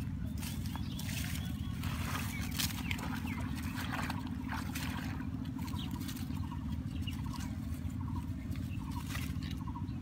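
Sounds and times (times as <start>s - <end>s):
leaves rustling and swishing: 0.3s - 4.3s.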